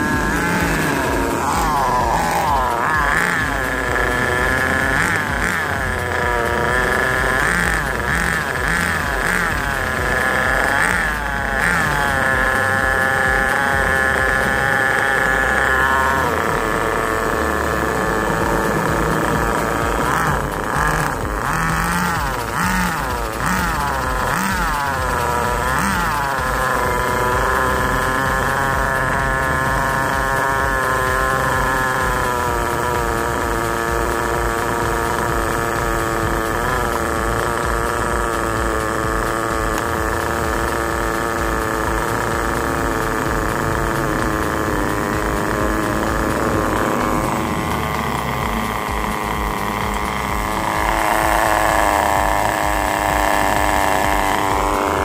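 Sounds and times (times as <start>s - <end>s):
small nitro engine revving: 0.0s - 55.0s.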